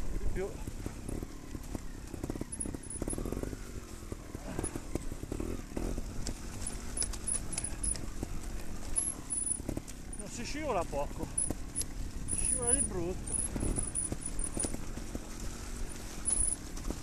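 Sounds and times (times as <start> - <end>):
motorcycle knocks and rattles: 0.0 - 17.0
off-road motorcycle engine: 0.0 - 17.0.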